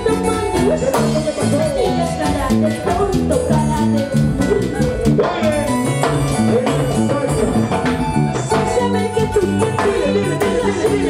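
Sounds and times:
live band dance music: 0.0s - 11.0s.

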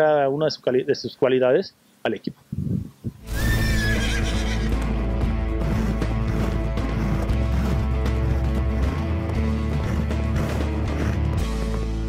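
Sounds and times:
horse whinny: 3.3s - 11.2s
music with deep bass: 4.7s - 12.0s.

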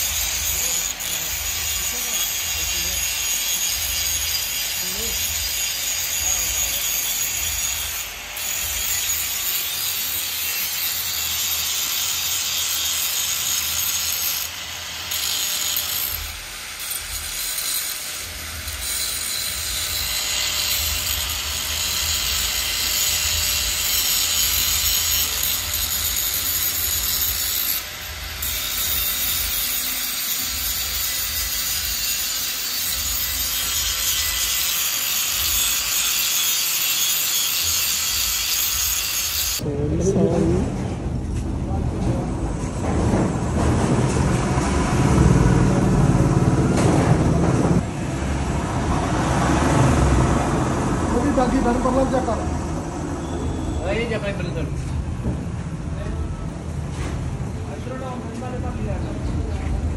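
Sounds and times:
angle grinder on steel pipe: 0.0s - 39.7s.

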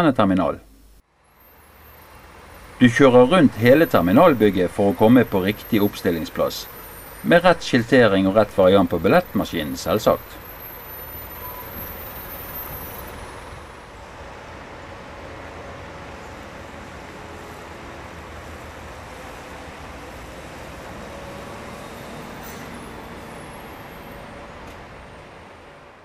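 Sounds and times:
road noise: 0.0s - 26.0s
diesel bus engine running: 1.4s - 26.0s.

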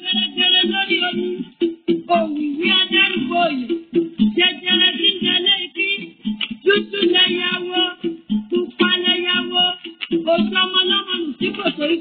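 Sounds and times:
person singing with music: 0.0s - 12.0s.

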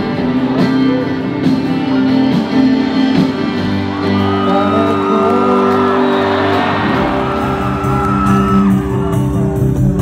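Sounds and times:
electric guitar: 0.0s - 10.0s
live band music: 0.0s - 10.0s
crowd whooping: 3.6s - 10.0s.

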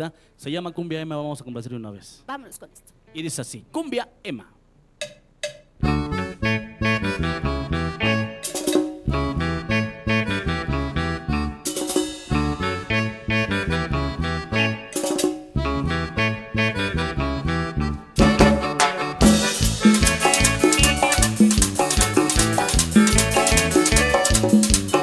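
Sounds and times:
congas: 5.0s - 17.6s, 18.2s - 25.0s
button accordion melody: 5.8s - 25.0s
electric bass: 5.8s - 25.0s
drum kit: 8.0s - 9.4s, 11.6s - 13.0s, 14.7s - 15.6s, 18.2s - 25.0s.

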